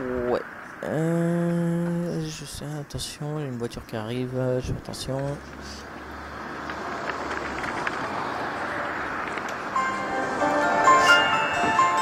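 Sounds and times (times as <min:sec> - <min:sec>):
road traffic noise: 0:00.0 - 0:12.0
phone ringtone melody: 0:09.7 - 0:12.0.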